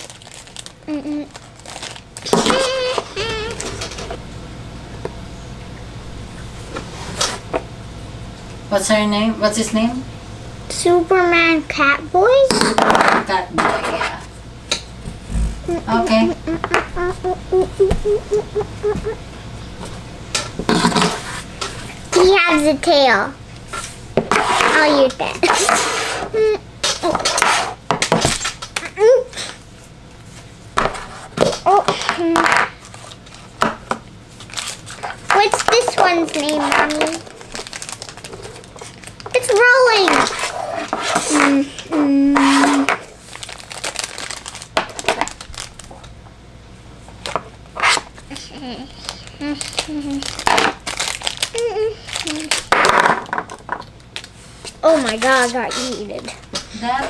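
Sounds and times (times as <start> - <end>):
plastic wrapper crinkling: 0.0 - 3.8, 34.4 - 40.5, 43.2 - 46.1, 47.2 - 52.7.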